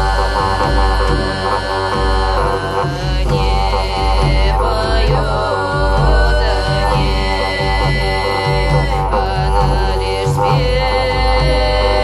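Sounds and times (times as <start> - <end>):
pulsing wind pipe drone: 0.0 - 12.0.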